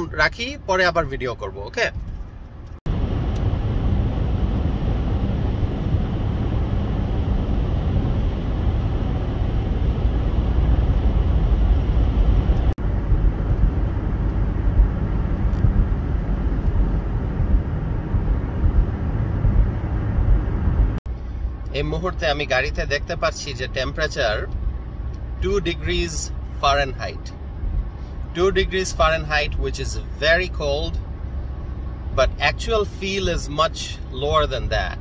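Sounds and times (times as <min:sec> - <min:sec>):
car engine hum: 0:00.0 - 0:35.0
road and tyre noise: 0:00.0 - 0:35.0.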